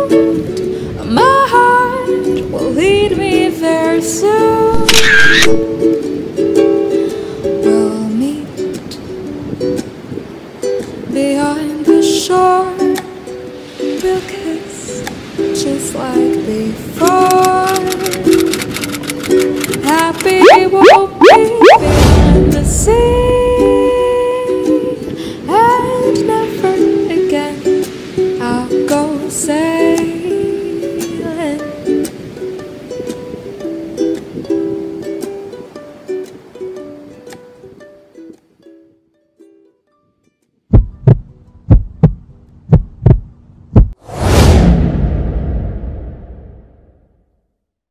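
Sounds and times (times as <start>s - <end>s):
plucked string music: 5.5s - 11.2s, 11.8s - 42.4s
loud whoosh: 20.4s - 23.7s, 43.0s - 47.2s
loud low thumps: 40.8s - 47.0s.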